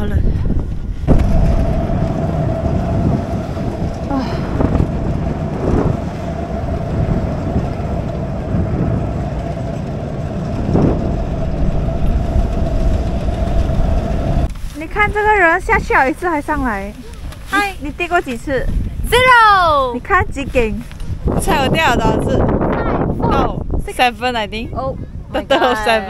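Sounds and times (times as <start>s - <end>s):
conveyor lift humming: 1.2s - 14.5s.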